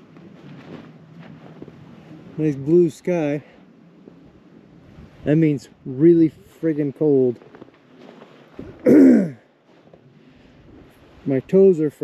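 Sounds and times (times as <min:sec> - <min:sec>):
wind buffeting microphone: 0:00.0 - 0:08.9, 0:10.0 - 0:11.8.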